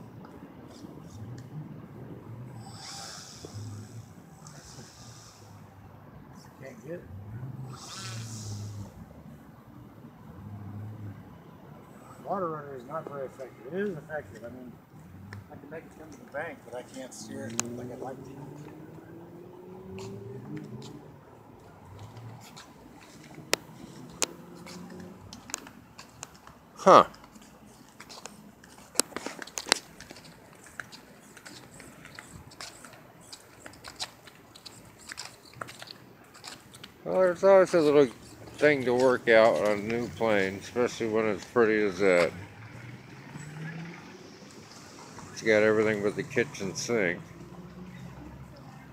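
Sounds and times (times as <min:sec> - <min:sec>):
model plane motor and propeller: 0:02.6 - 0:05.5
footsteps on paved path: 0:18.4 - 0:48.7.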